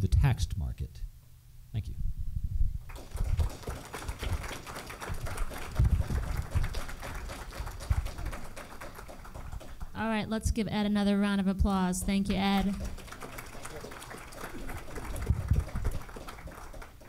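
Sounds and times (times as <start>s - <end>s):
audience applauding: 2.9s - 10.0s, 12.0s - 17.0s.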